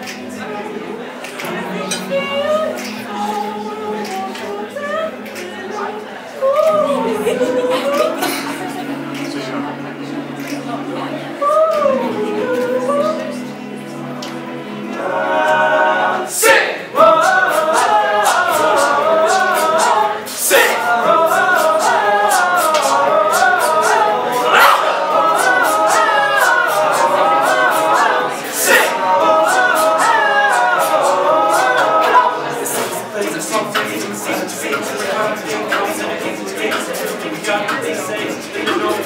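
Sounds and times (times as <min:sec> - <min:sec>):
men singing in harmony: 0:00.0 - 0:39.0.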